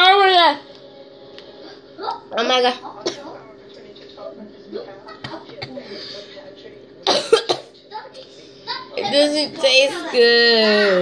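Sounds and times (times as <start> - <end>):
girl coughing: 7.1 - 7.7.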